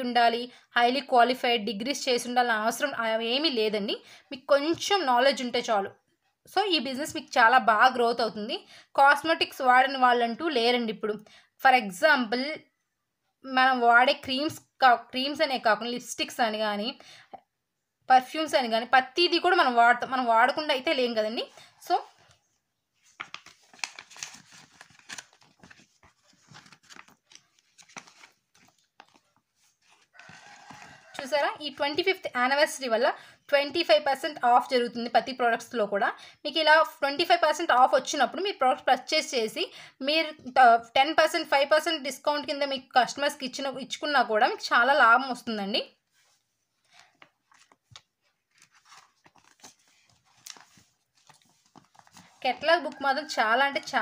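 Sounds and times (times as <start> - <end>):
paper pages rustling: 21.6 - 31.2, 46.1 - 53.0.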